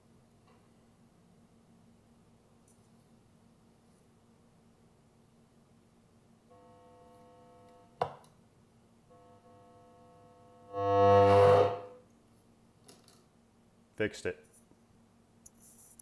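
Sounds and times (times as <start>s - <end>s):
buzzy tone from bass amp speaker: 6.5s - 8.0s, 9.1s - 12.0s.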